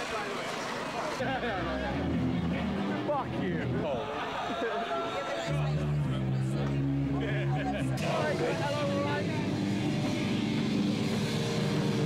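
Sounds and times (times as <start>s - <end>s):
buzzing drone of amplified band: 0.0s - 12.0s
crowd talking: 0.0s - 12.0s.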